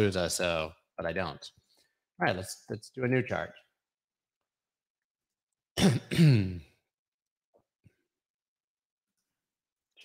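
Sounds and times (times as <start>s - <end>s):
man clearing his throat: 5.8s - 6.8s.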